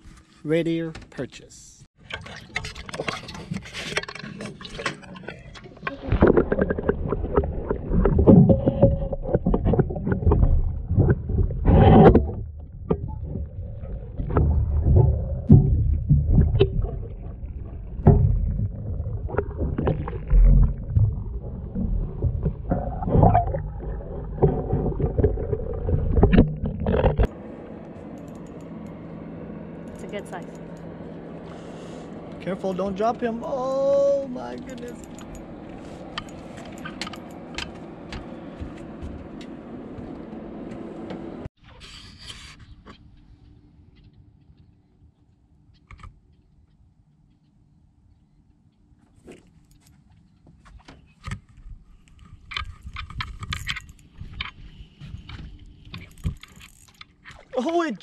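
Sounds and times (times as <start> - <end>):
low steady hum: 0.0 - 41.9
muffled underwater water sloshing: 2.0 - 28.1.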